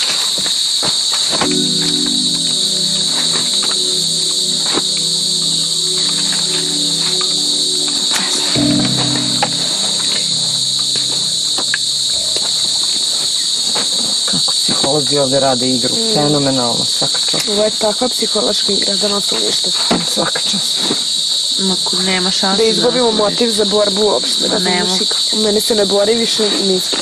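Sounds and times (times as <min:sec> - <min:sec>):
night insects trilling: 0:00.0 - 0:27.0
low sustained drone: 0:01.4 - 0:13.3.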